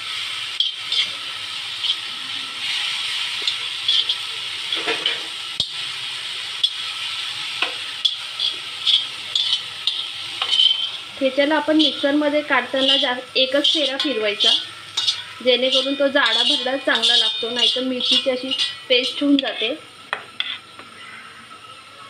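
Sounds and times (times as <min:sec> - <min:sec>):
food sizzling in oil: 0:00.0 - 0:22.0
spatula scraping pan: 0:00.6 - 0:01.2, 0:07.6 - 0:20.8.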